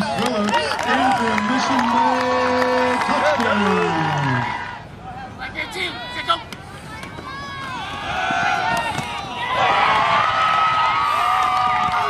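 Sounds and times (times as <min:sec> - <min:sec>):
people shouting: 0:07.2 - 0:12.0.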